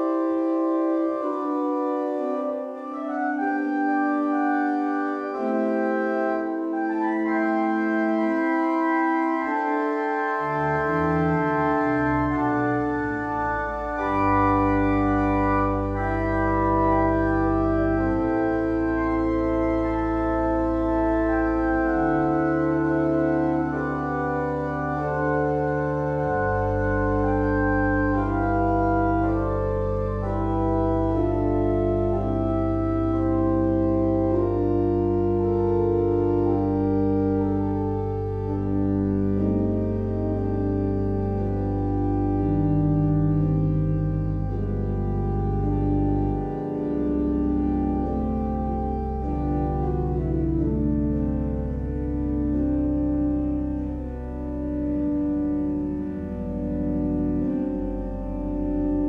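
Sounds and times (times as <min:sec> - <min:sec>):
organ playing sustained chords: 0:00.0 - 0:59.0.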